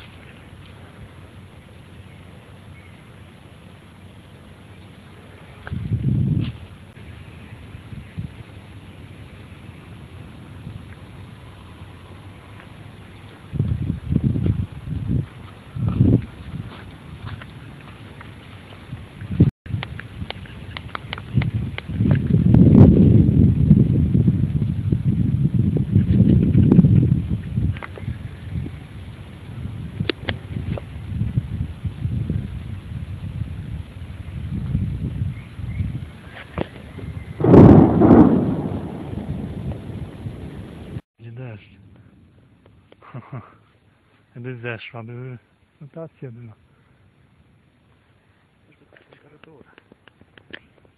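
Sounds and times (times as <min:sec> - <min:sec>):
wind buffeting microphone: 0:05.5 - 0:41.0
thunder crack and rumble: 0:37.3 - 0:41.0.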